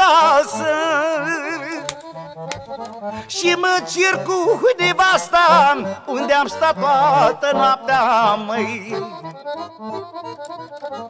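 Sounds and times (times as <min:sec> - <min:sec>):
accordion playing: 0:00.0 - 0:11.0
sharp clicks: 0:01.7 - 0:03.1, 0:10.3 - 0:11.0.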